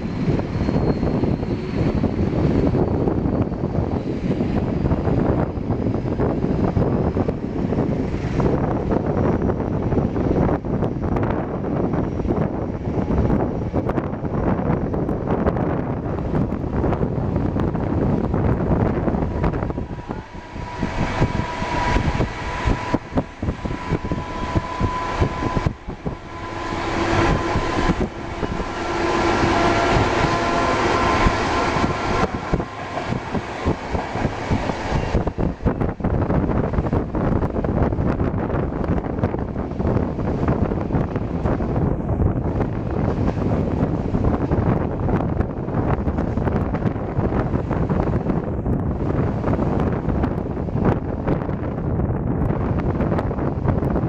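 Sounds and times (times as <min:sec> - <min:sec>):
steady whining tones: 0:00.0 - 0:54.0
train wheels rumbling on track: 0:00.0 - 0:54.0
wind on microphone: 0:00.0 - 0:54.0.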